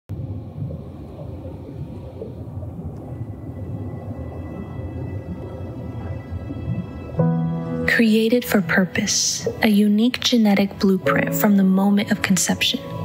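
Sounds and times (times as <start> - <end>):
low churning ambient rumble: 0.1 - 13.0.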